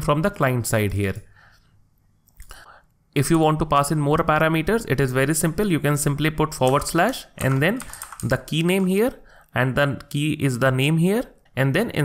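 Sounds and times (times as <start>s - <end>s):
man speaking: 0.0s - 1.3s, 3.2s - 12.0s
soft intake of breath: 1.3s - 1.8s, 2.4s - 3.0s, 9.2s - 9.6s.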